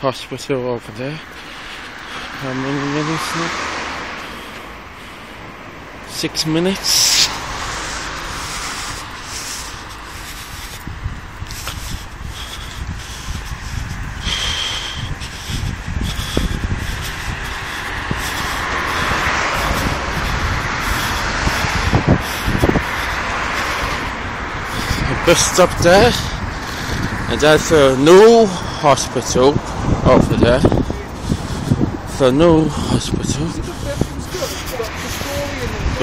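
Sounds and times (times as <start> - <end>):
road traffic going by: 0.0 - 36.0
vehicle passing: 0.8 - 36.0.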